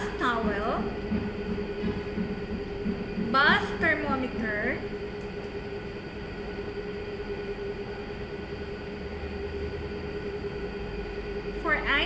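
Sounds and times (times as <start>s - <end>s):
appliance mechanical hum: 0.0s - 12.0s.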